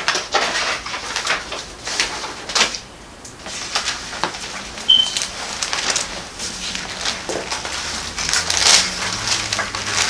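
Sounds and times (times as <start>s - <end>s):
paper pages rustling: 0.0s - 2.8s, 3.4s - 10.0s.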